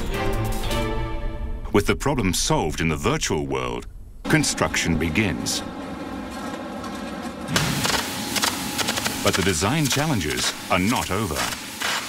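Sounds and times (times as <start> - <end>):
background music: 0.0 - 1.8
electric arc welding crackling: 7.5 - 12.0.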